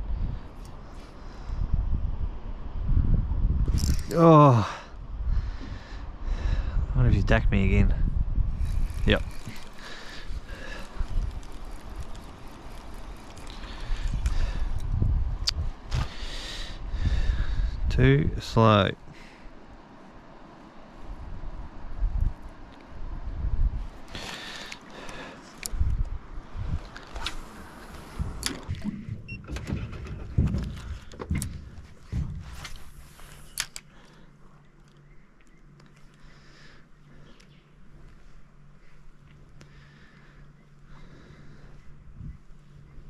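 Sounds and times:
faint steady hum: 0:00.0 - 0:43.0.

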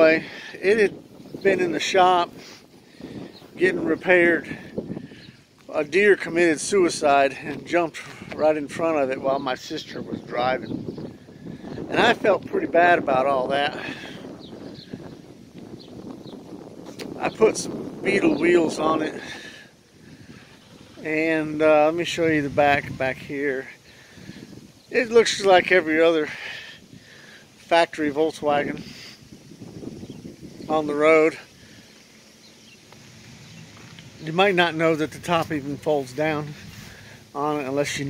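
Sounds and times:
wind on microphone: 0:00.0 - 0:31.9, 0:32.5 - 0:38.0
faint steady outdoor noise: 0:00.0 - 0:38.0.

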